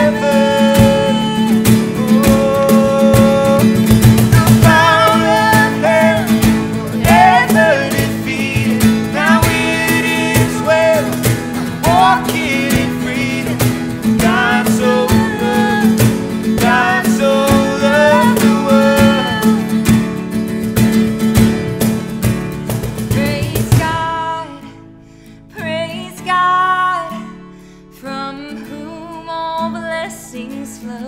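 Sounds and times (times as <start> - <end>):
woman singing: 0.0 - 19.8, 23.1 - 24.8, 25.5 - 31.0
cajon beat: 0.0 - 24.4
strummed acoustic guitar: 0.0 - 31.0.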